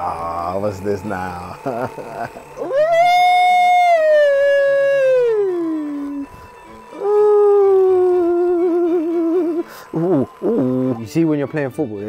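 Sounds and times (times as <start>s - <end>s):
man howling in pain: 1.5s - 11.0s.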